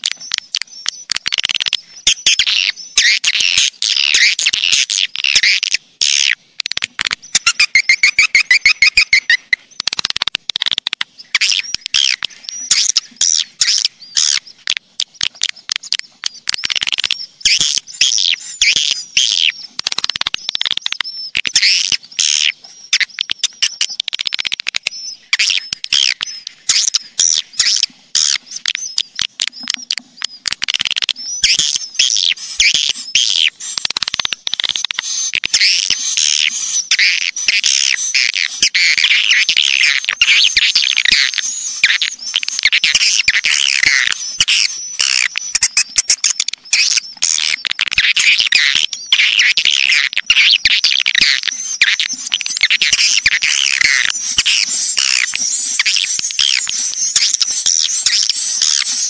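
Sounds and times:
swiftlet twittering chirps: 0:00.0 - 0:06.4, 0:07.0 - 0:10.3, 0:11.1 - 0:59.0
rapid sharp clicks: 0:04.8 - 0:59.0.

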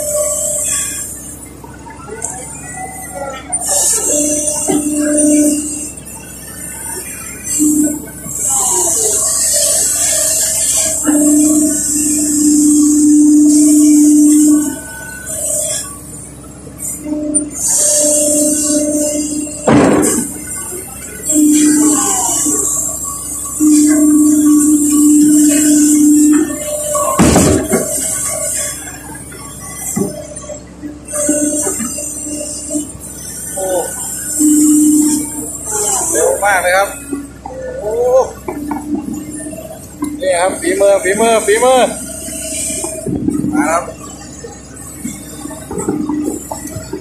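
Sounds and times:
excavator engine and hydraulics whine: 0:00.0 - 0:47.0.

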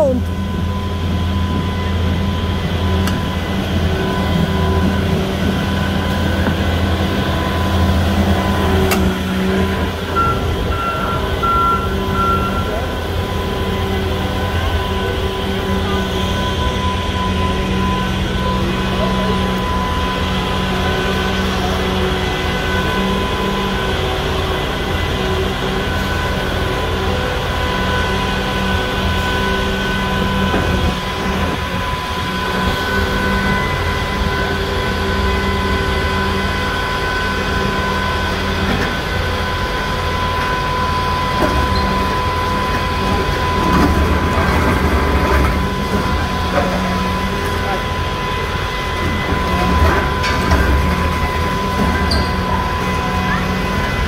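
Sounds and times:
constant machine whine: 0:00.0 - 0:54.0
excavator diesel engine rumbling: 0:00.0 - 0:54.0.

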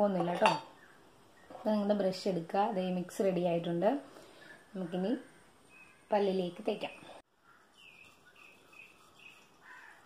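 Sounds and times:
woman talking: 0:01.6 - 0:04.0, 0:04.7 - 0:05.3, 0:06.1 - 0:07.2.

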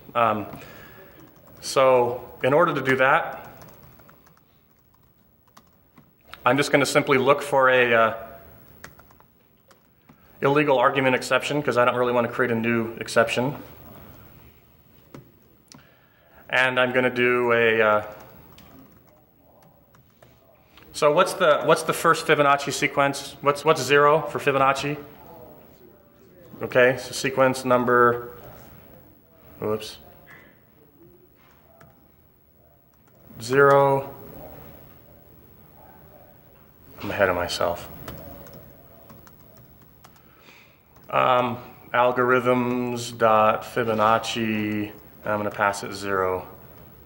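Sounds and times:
laptop keyboard typing: 0:00.8 - 0:06.2, 0:08.6 - 0:10.3, 0:18.1 - 0:20.4, 0:31.5 - 0:32.0, 0:37.7 - 0:40.3, 0:40.9 - 0:41.2.

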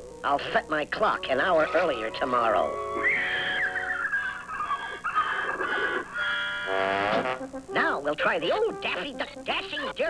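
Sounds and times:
orchestral cartoon music: 0:01.0 - 0:04.9
cartoon horse laughing: 0:03.0 - 0:06.2.

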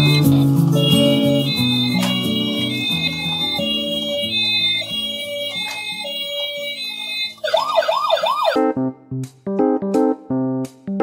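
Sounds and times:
toy ambulance siren wailing: 0:00.0 - 0:08.6
background music: 0:00.0 - 0:11.0.

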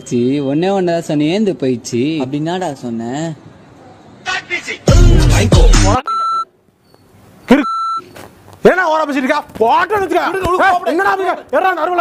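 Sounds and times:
high censor bleeps: 0:06.0 - 0:08.2.

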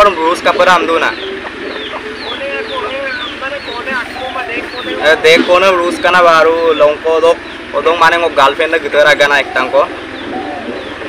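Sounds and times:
dove cooing: 0:01.0 - 0:06.1, 0:09.3 - 0:11.0
man's voice: 0:01.8 - 0:07.4.

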